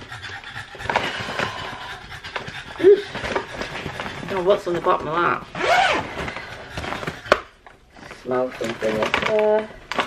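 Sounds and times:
plastic bag rustling: 0:02.8 - 0:10.0.

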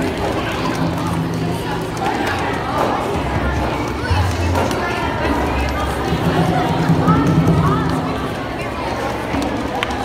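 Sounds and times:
group beating hand drums: 0:00.0 - 0:09.7.

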